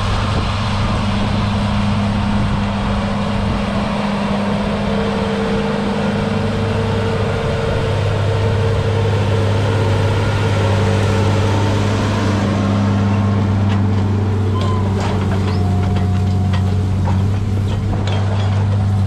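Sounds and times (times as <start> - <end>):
tractor diesel engine running: 0.0 - 19.0
higher steady tone: 14.4 - 16.0.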